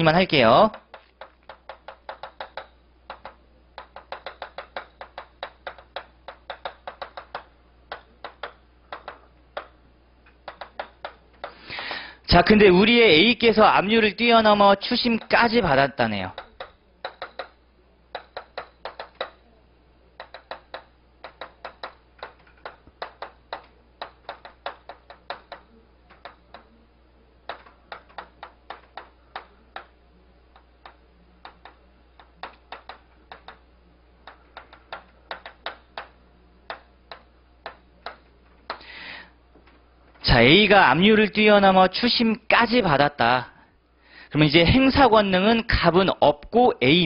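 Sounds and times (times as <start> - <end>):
chalk tapping and scratching: 0.7 - 9.2.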